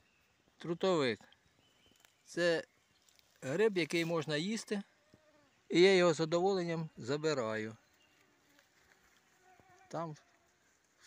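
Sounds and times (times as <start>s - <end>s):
flying insect buzzing: 7.9s - 11.0s.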